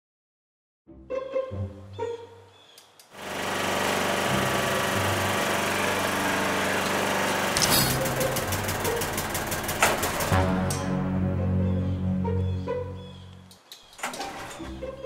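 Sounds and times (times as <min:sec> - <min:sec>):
lawn mower engine running: 0:03.2 - 0:11.0, 0:14.0 - 0:15.0
rapid rattling clatter: 0:04.9 - 0:10.5.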